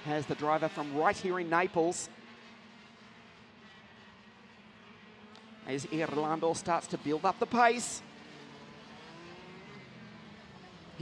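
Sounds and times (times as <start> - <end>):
faint kart engines droning: 0.0 - 11.0.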